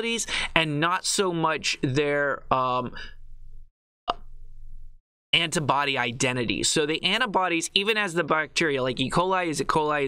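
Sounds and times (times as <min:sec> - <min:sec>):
mouth click lip smack: 0:04.1 - 0:04.3.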